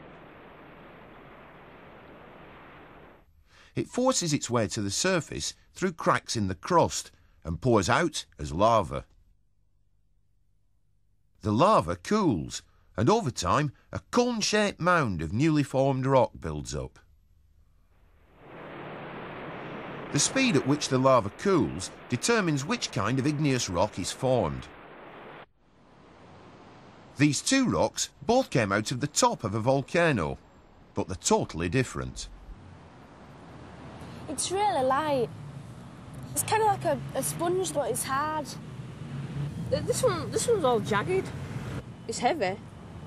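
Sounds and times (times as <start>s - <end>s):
volcanic eruption rushing: 0.0s - 3.2s, 18.2s - 42.1s.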